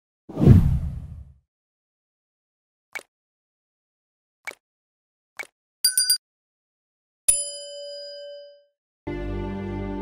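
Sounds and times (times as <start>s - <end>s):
deep whoosh: 0.3s - 1.3s.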